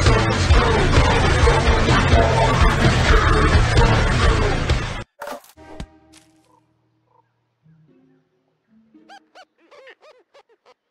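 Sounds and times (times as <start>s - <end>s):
soft soundtrack music: 5.6s - 9.6s
high squeaky cartoon laughs: 9.0s - 10.9s.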